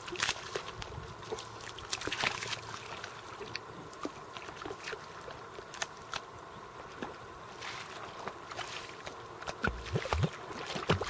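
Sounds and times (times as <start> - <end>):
wet mud squelching: 0.0 - 6.3, 7.5 - 11.0.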